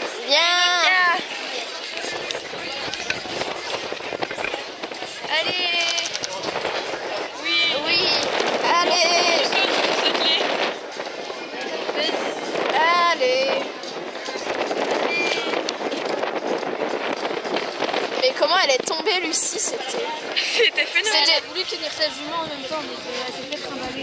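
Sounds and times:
outdoor background noise: 0.0 - 24.0
spectators talking and calling out: 0.0 - 24.0.

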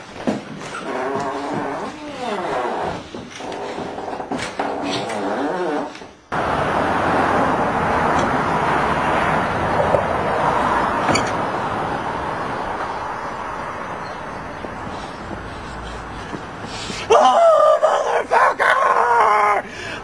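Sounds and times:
steady outdoor noise: 0.0 - 20.0.

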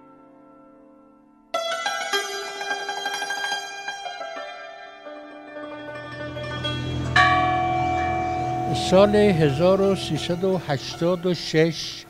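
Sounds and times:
large clock bell ringing: 5.8 - 12.0.

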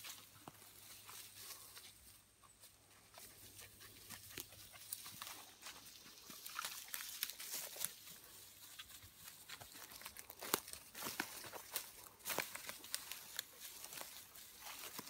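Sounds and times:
footsteps through grass and pine needles: 0.0 - 15.0.

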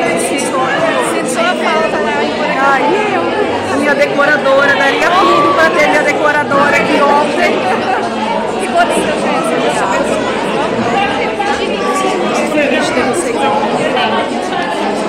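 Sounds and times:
crowd hubbub in large hall: 0.0 - 15.0
people talking close to microphone: 0.0 - 15.0.

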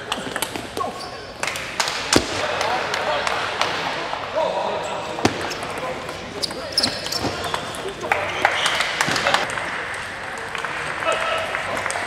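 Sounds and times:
voices echoing in a hall: 0.0 - 12.0.

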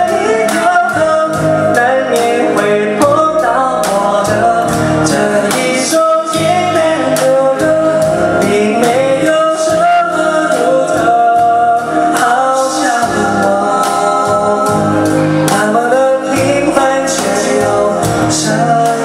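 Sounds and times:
instrumental accompaniment: 0.0 - 19.0
man singing: 0.0 - 19.0.

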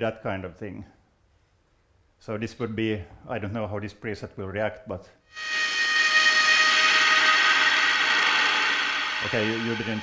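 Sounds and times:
sustained synthesized buzzing tone: 5.3 - 10.0.

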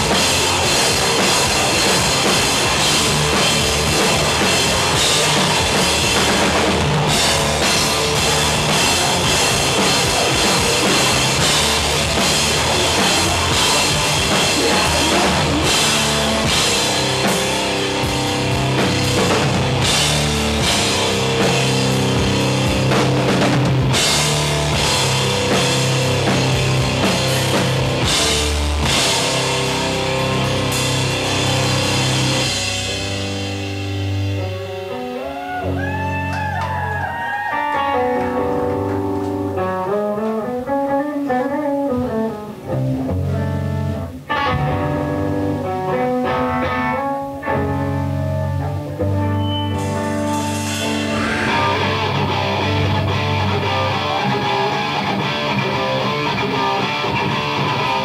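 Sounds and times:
heavy rock band playing: 0.0 - 58.0.

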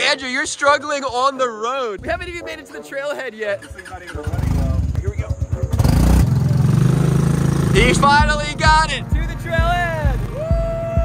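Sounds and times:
small engine running rough: 5.3 - 8.3.

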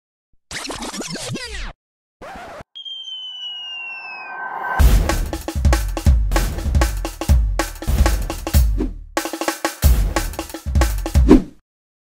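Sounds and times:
glitchy pitch sweeps: 2.8 - 4.9
burst of noise: 2.8 - 5.0
sharp hit with ringing tone: 2.8 - 5.0.

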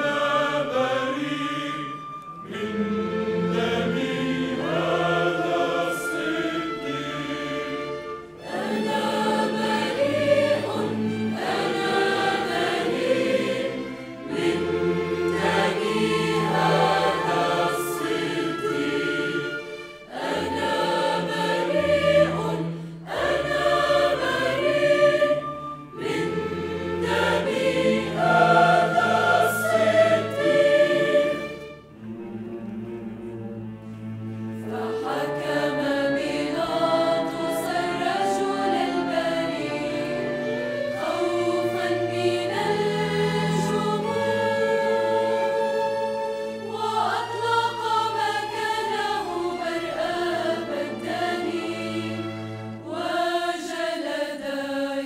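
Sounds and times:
mixed choir singing: 0.0 - 55.0
string orchestra: 0.0 - 55.0.

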